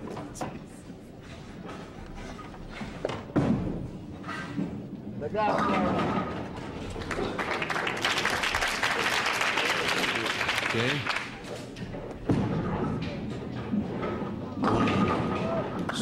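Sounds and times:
audience applause and calls: 6.8s - 11.5s
bowling ball hitting pins: 12.2s - 16.0s.

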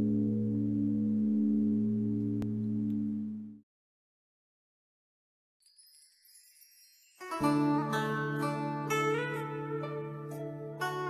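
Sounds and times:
high-pitched chime shimmer: 5.6s - 8.5s.

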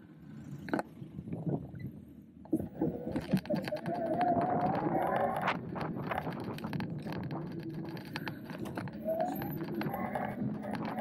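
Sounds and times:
tyre and wind noise: 0.5s - 11.0s
bicycle frame knocks and rattles: 5.6s - 9.0s.

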